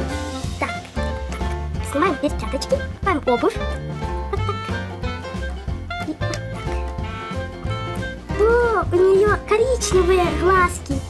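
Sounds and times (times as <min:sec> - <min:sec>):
upbeat swing music: 0:00.0 - 0:11.0
girl's voice: 0:00.5 - 0:00.9, 0:01.8 - 0:04.5, 0:08.3 - 0:11.0.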